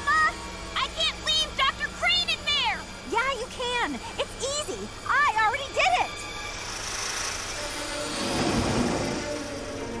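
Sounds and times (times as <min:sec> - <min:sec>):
background music: 0:07.2 - 0:10.0.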